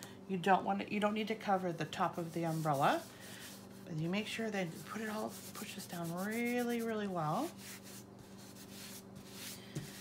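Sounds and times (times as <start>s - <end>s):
hands rubbing tape on paper: 2.2s - 3.9s, 4.6s - 10.0s.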